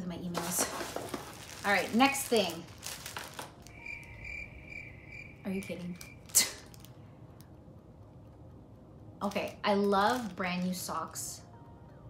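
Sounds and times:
packaging being handled: 0.2s - 3.8s
high-pitched chirping trill: 3.7s - 6.4s.

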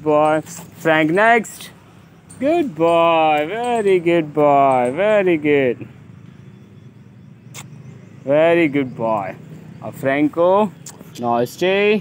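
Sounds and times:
sharp click: 7.5s - 7.8s, 10.8s - 11.1s.

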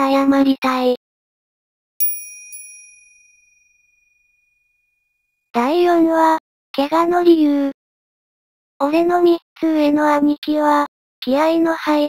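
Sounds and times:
metallic bell chime: 2.0s - 4.8s.

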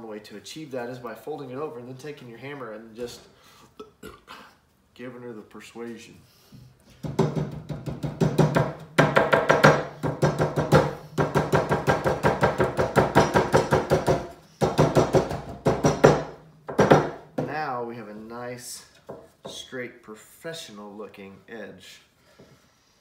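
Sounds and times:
rubber mallet beating metal: 7.0s - 17.5s.

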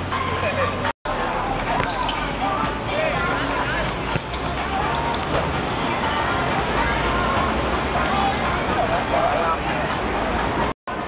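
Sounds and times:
football kicked and bouncing: 3.8s - 5.5s.

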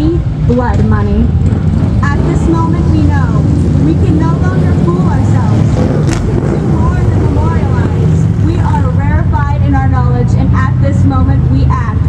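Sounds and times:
low motor drone: 0.0s - 12.0s
woman reading aloud: 2.1s - 5.7s, 6.5s - 12.0s.

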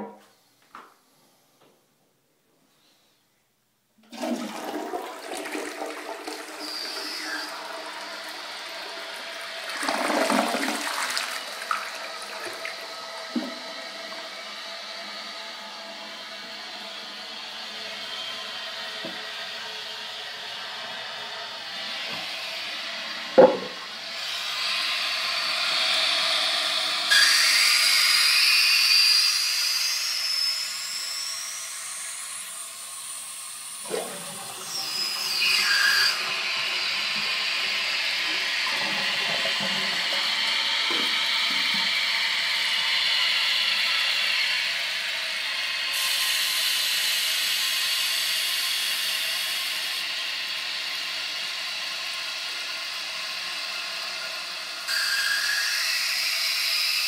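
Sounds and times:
toilet tank refill hiss: 4.0s - 15.2s, 21.8s - 57.0s
toilet flushing: 4.0s - 16.4s, 21.8s - 29.0s, 31.3s - 57.0s
sharp knock: 23.4s - 23.8s.

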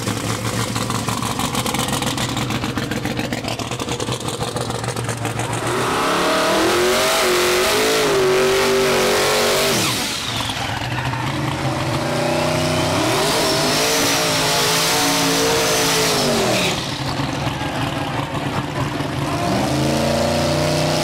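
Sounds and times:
engines revving high: 0.0s - 21.0s.

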